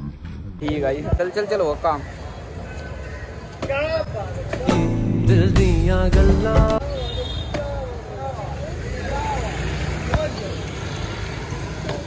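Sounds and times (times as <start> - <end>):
vehicle engine rumble: 0.0 - 1.3.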